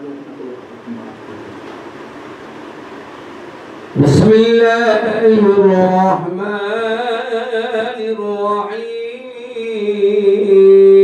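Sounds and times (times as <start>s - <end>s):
microphone room hiss: 0.0s - 11.0s.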